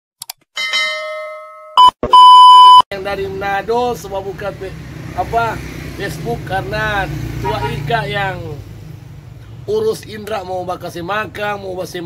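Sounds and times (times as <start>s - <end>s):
test-tone beep: 1.8s - 2.8s.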